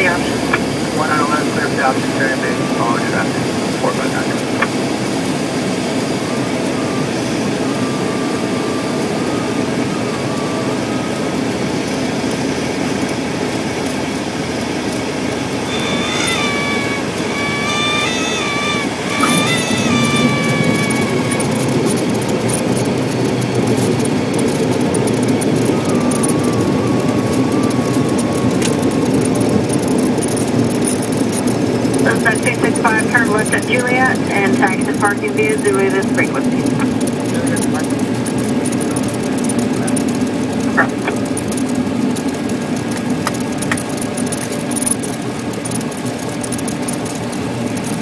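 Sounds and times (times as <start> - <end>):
propeller airplane engine: 0.0 - 48.0
high wavering tone: 15.4 - 23.0.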